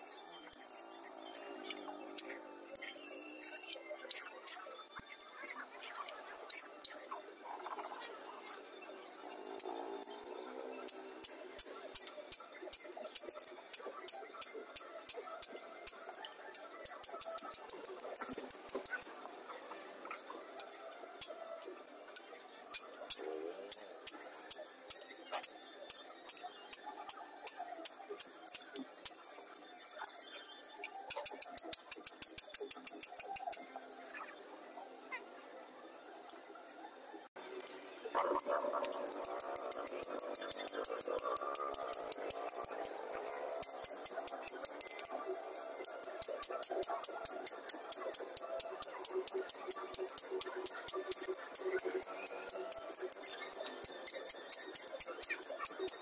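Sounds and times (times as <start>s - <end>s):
metallic clicks of engraving tool: 38.4s - 56.0s.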